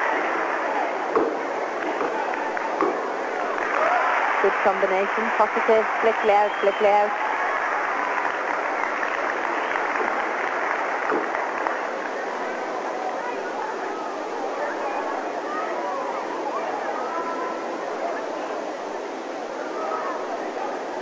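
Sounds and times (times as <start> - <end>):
arena crowd murmur: 0.0 - 21.0.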